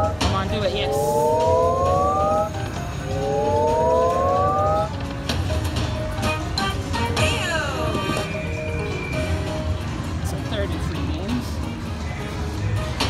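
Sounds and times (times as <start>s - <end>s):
rising electronic chord: 0.0s - 5.3s.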